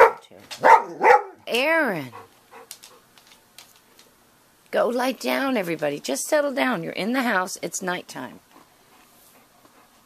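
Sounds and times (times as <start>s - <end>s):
dogs moving with light clicks: 2.5s - 4.2s.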